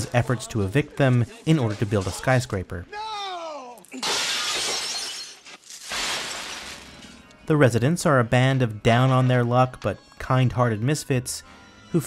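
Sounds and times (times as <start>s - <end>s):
glass shattering: 3.8s - 7.2s.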